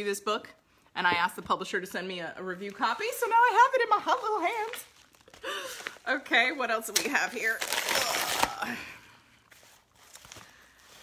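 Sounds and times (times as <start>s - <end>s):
paper rustling: 2.5s - 8.5s, 9.4s - 11.0s.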